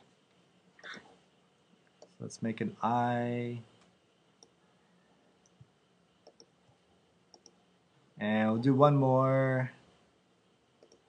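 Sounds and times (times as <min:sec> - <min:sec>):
faint computer mouse clicks: 0:06.2 - 0:06.5, 0:07.3 - 0:07.6, 0:10.8 - 0:11.0.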